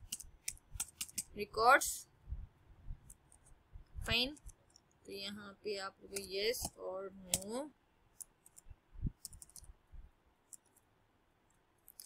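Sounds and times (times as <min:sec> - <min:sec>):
computer keyboard key clicks: 0:00.0 - 0:01.3, 0:08.2 - 0:09.7.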